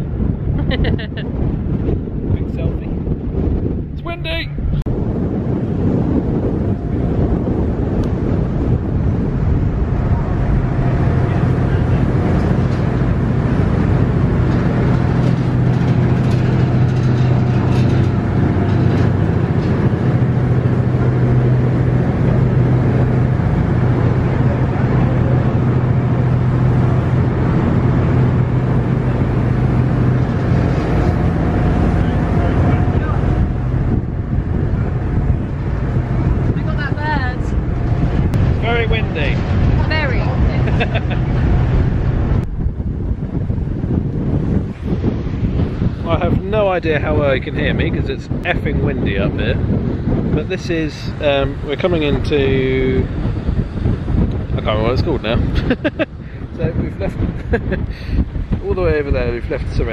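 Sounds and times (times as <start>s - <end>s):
ship engines droning: 0.0s - 59.9s
wind buffeting microphone: 0.0s - 59.9s.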